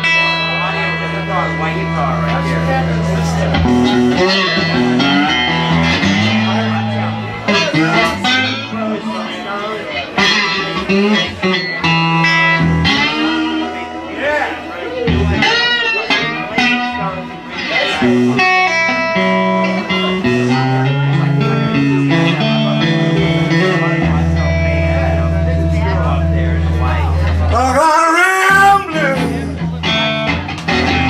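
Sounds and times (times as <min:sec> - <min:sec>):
bass guitar: 0:00.0 - 0:31.0
electric guitar lead lines: 0:00.0 - 0:31.0.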